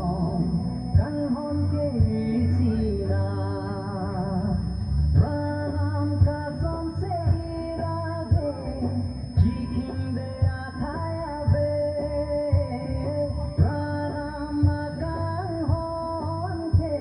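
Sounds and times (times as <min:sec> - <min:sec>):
band with bass beat and drums: 0:00.0 - 0:03.2, 0:04.3 - 0:17.0
gospel singing: 0:00.0 - 0:17.0.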